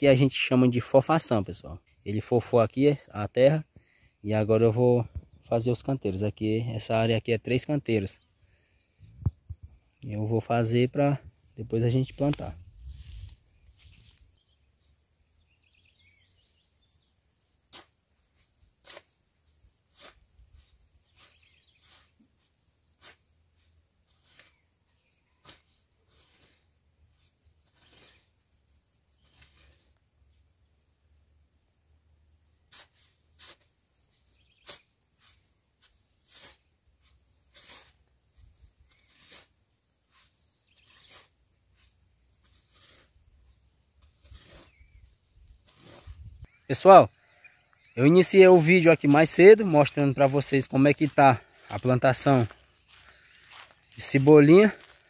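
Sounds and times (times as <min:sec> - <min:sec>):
hoe chopping into soil: 0:17.7 - 0:18.0, 0:18.8 - 0:19.2, 0:32.7 - 0:33.8, 0:34.5 - 0:36.7.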